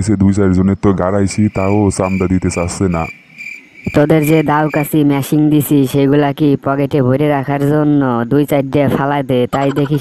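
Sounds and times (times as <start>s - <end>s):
person speaking: 0.0s - 3.1s, 3.9s - 10.0s
crickets chirring: 0.0s - 10.0s.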